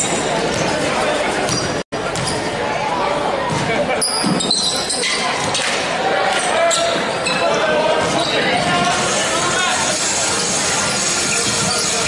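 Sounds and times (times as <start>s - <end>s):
voices echoing in hall: 0.0s - 12.0s
high squeaks: 9.8s - 12.0s.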